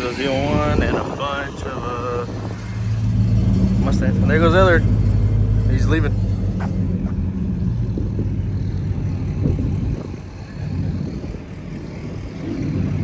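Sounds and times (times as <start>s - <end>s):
car engine rumbling: 0.0s - 13.0s.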